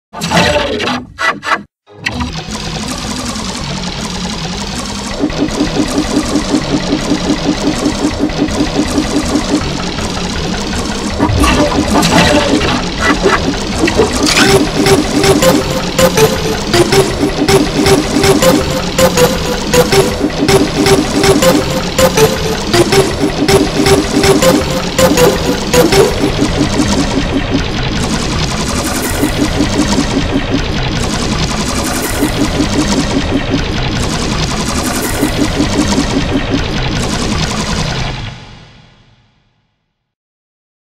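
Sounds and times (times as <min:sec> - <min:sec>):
stuttering remix audio: 0:00.2 - 0:38.7
short repeating tones: 0:11.2 - 0:27.6
smooth repeating loop: 0:11.2 - 0:33.6.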